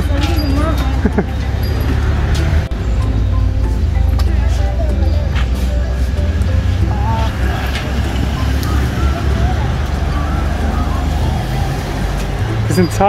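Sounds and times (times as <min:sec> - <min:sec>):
faint voices: 0:00.0 - 0:13.0
low outdoor rumble: 0:00.0 - 0:13.0.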